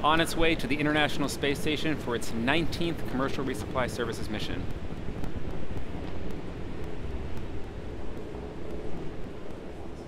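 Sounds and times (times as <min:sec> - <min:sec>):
rocket engine rumble with crackling: 0:00.0 - 0:10.0.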